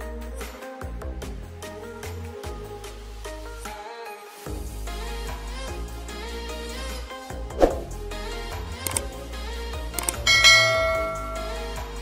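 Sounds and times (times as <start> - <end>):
background music: 0.0 - 12.0
mouse click: 10.0 - 10.2
bright bell chime: 10.3 - 12.0.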